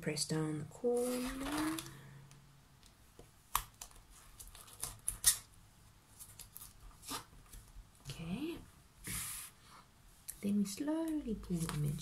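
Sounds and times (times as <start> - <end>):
sticker rustling scrapes: 6.2 - 7.4.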